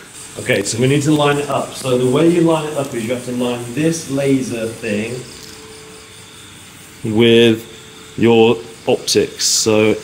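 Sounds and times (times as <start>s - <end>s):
faint steady hum: 0.0s - 10.0s
insects chirping: 0.0s - 10.0s.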